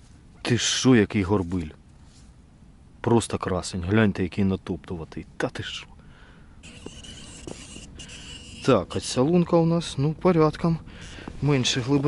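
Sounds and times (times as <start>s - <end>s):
fishing reel rubbing hiss: 6.6s - 9.1s.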